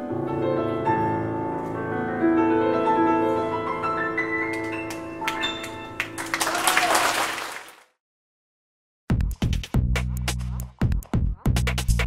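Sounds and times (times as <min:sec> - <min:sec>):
piano and strings held notes: 0:00.0 - 0:06.5
audience applause: 0:04.6 - 0:07.9.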